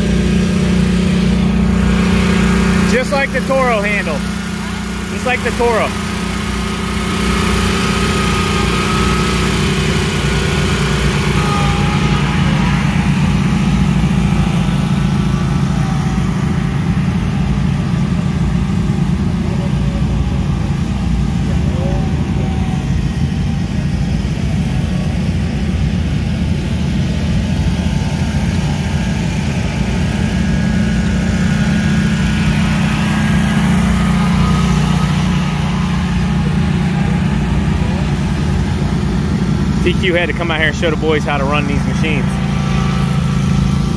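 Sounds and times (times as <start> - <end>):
lawn mower engines droning: 0.0 - 43.9.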